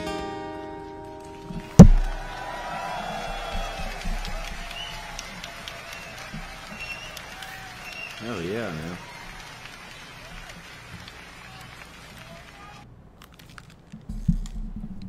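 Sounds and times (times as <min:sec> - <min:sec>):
faint audience applause and cheering: 0:01.0 - 0:12.9
loud thump with low rumble: 0:01.8 - 0:02.3.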